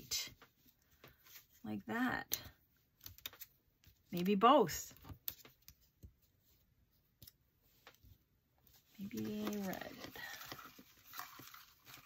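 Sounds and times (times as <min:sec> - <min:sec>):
paper scraps rustling: 0:08.8 - 0:12.0.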